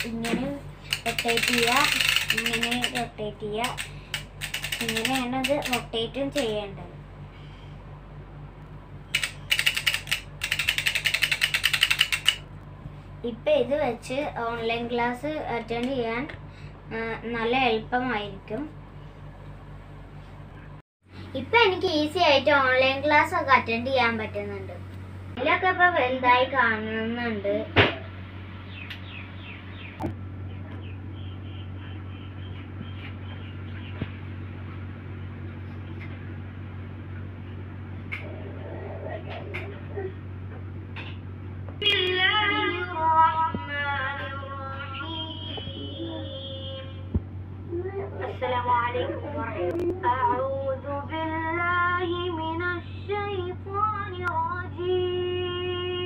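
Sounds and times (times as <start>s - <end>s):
low hum: 0.0s - 56.0s
plastic ratchet clicking rapidly: 0.9s - 6.5s, 9.1s - 12.4s.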